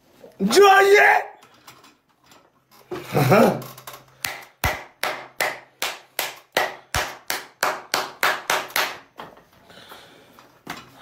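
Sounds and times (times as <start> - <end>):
person clapping hands: 4.2 - 9.2.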